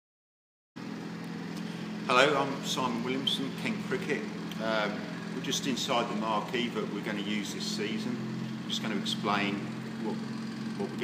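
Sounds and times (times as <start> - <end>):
low machine hum: 0.8 - 11.0.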